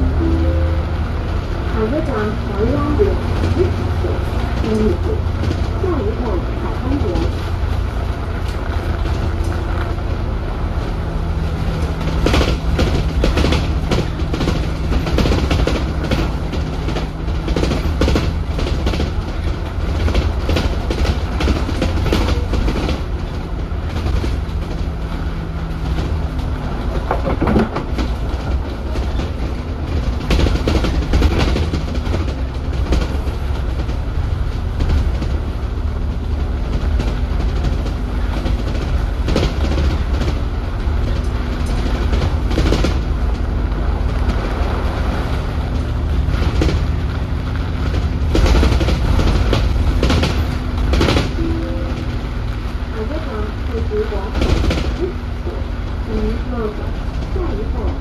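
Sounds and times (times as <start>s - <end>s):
bus engine and road rumble: 0.0s - 58.0s
bus body knocks and rattles: 1.8s - 51.8s, 52.5s - 58.0s.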